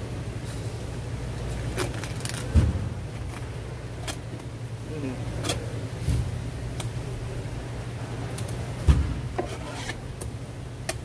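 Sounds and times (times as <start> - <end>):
knife scraping on cutting board: 9.4 - 10.0.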